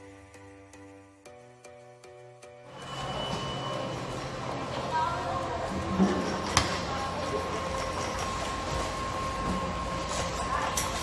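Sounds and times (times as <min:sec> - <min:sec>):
baggage conveyor rumble: 0:02.7 - 0:11.0.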